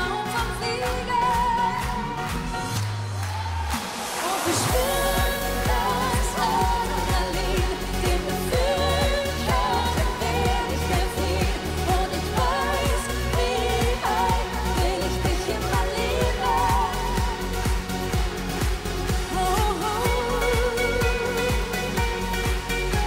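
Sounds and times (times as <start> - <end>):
woman singing: 0.0 - 2.4, 4.2 - 23.0
electronic beat: 4.7 - 23.0.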